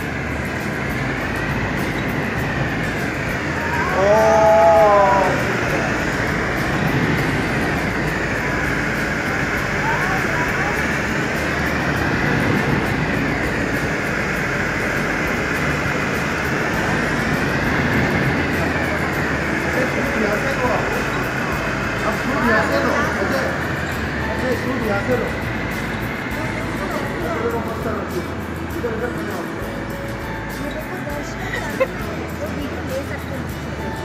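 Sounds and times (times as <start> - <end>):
wind tunnel air rushing: 0.0 - 30.5
high air hiss: 0.0 - 34.0.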